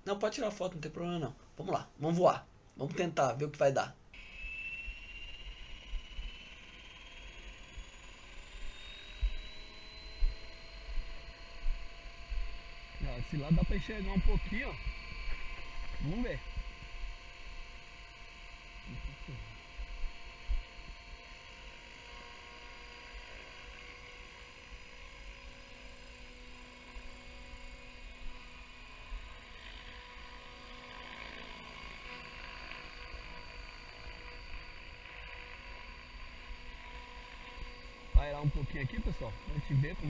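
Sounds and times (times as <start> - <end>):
electric motor and gears whine: 4.1 - 40.0
helicopter rotors humming: 4.2 - 40.0.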